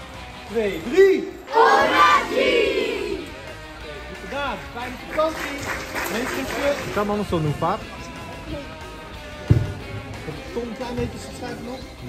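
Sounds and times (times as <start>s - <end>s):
children shouting together: 1.5s - 3.3s.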